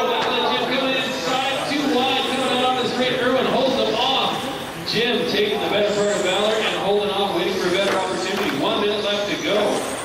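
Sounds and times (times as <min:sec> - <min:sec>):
man talking in echoing hall: 0:00.0 - 0:10.0.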